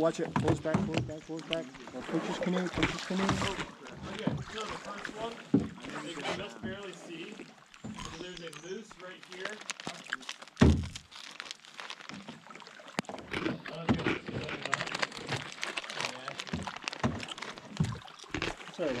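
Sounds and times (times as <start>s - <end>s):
heavy thump on canoe hull: 10.6s - 10.9s.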